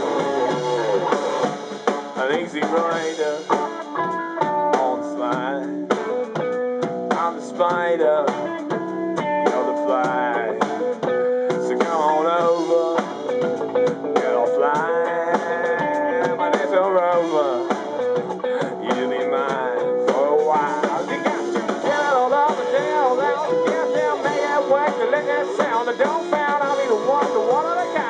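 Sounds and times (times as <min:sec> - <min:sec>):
bass guitar: 0:00.0 - 0:28.0
drum kit: 0:00.0 - 0:28.0
electric guitar lead: 0:00.0 - 0:28.0.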